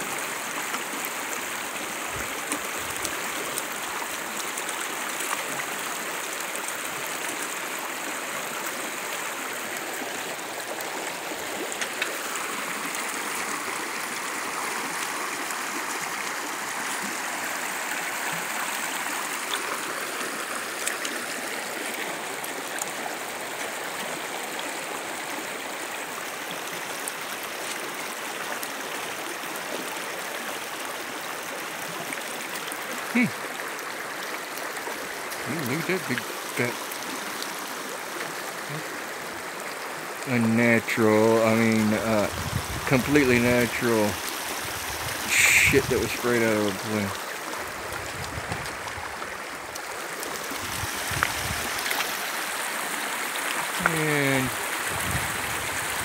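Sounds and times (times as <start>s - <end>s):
creek water running over rocks: 0.0s - 56.0s.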